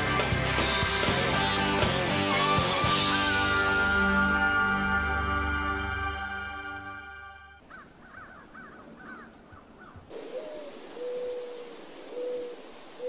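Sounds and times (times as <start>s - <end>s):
music: 0.0s - 7.6s
low drawn-out bird calls: 7.6s - 13.0s
steady hiss: 10.1s - 13.0s.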